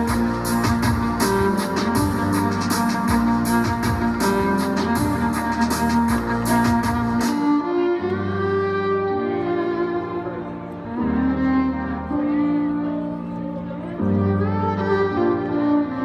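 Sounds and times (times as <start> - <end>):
steady drumbeat: 0.0 - 7.4
deep bass notes: 0.0 - 7.6
amplified violin: 0.0 - 16.0.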